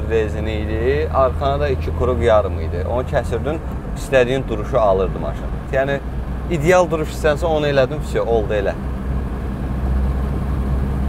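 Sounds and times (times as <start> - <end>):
car engine running: 0.0 - 11.0
road noise: 0.0 - 11.0.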